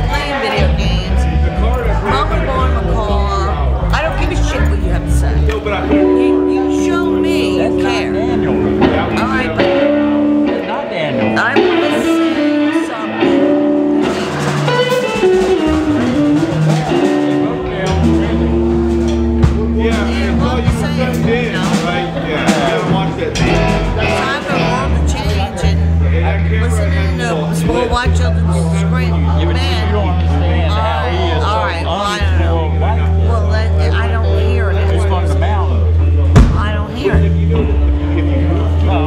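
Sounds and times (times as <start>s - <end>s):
drum kit: 0.0s - 29.9s, 36.3s - 39.0s
bass guitar: 0.0s - 39.0s
electric guitars: 0.0s - 39.0s.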